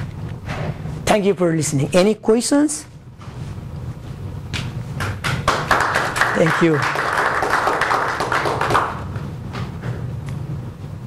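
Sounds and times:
low room hum: 0.0s - 11.0s
audience applause: 5.4s - 9.1s.

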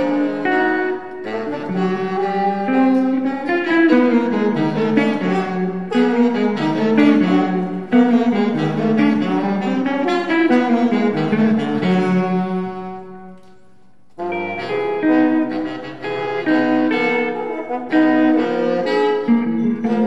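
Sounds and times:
jazz ensemble playing: 0.0s - 20.0s.

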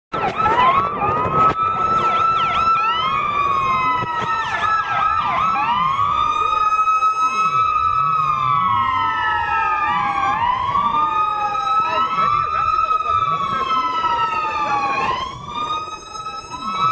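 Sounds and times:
police sirens wailing: 0.1s - 16.9s.

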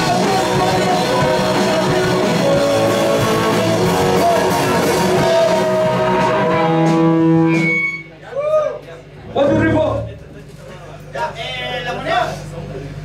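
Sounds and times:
live rock band playing: 0.0s - 8.2s, 9.2s - 10.4s
person speaking: 9.2s - 10.5s.

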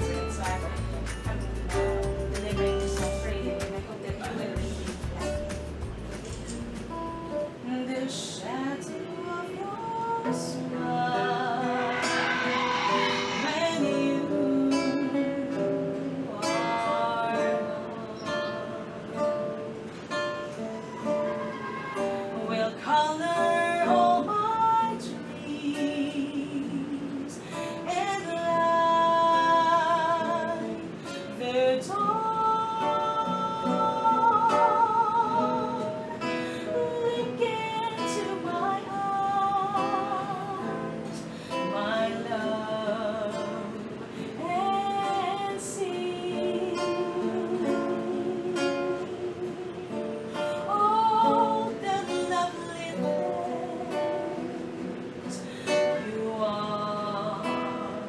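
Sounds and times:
person singing love song: 0.0s - 58.0s
strummed acoustic guitar: 0.0s - 58.0s.

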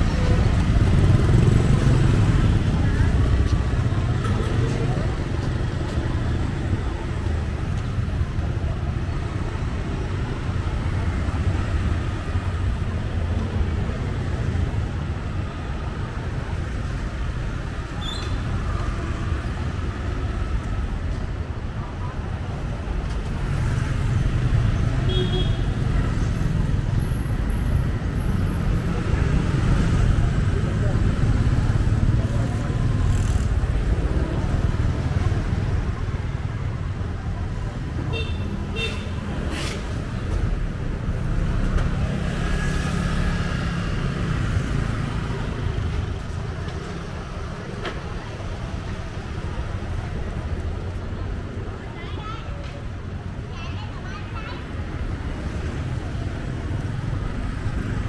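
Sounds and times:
engine and road rumble: 0.0s - 58.0s
motorbikes and cars passing: 0.0s - 58.0s.

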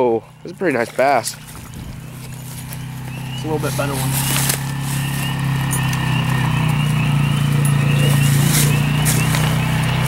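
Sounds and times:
low mechanical drone: 0.0s - 10.0s
faint high chirps: 2.3s - 10.0s.

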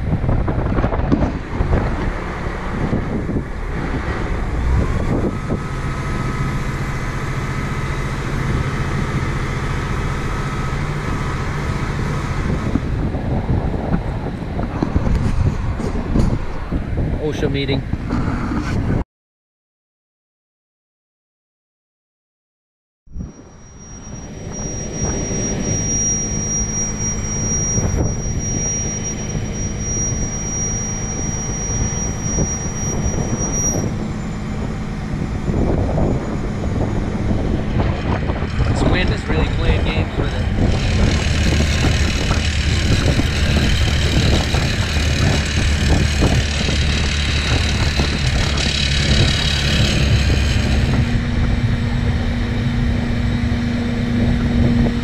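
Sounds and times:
heavy engine running: 0.0s - 18.4s, 23.2s - 55.0s
wind buffeting microphone: 0.0s - 19.0s, 23.1s - 55.0s.

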